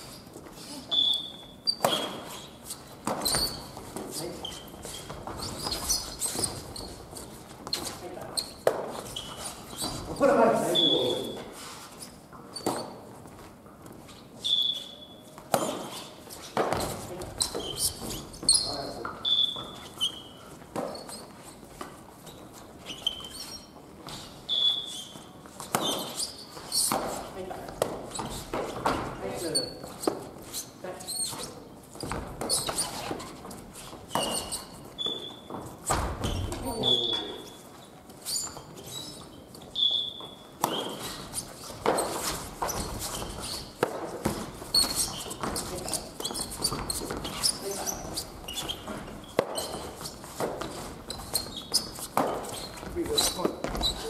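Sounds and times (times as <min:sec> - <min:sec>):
sports shoes squeaking on wood floor: 0:00.0 - 0:54.0.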